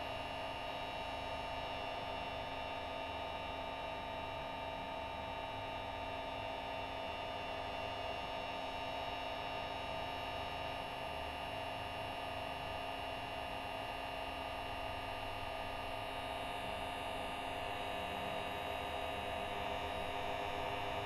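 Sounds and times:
electrical hum with held tones: 0.0 - 21.0.

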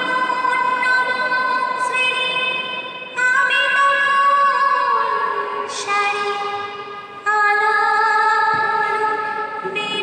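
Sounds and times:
woman singing unaccompanied: 0.0 - 6.5, 7.2 - 10.0.

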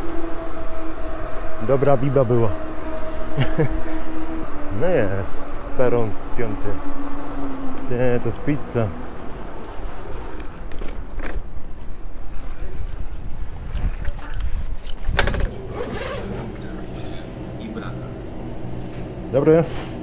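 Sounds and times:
wind rumbling on microphone: 0.0 - 17.6
e-bike rolling: 0.0 - 20.0
steady low hum: 0.0 - 20.0.

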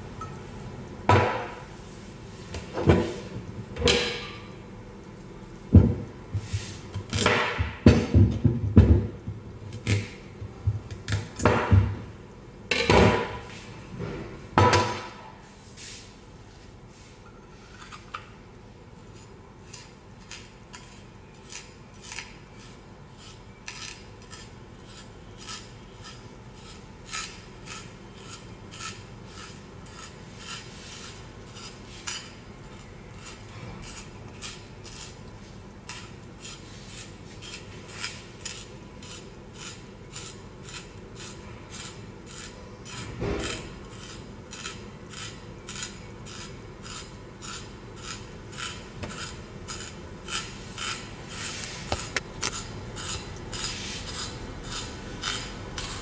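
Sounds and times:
spiral slicer shaving carrot: 35.9 - 56.0.

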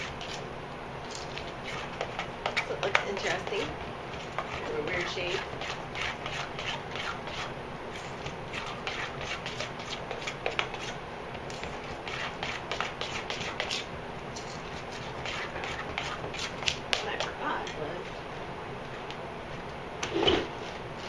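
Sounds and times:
utensil scraping metal bowl: 0.0 - 0.4, 1.1 - 17.8.

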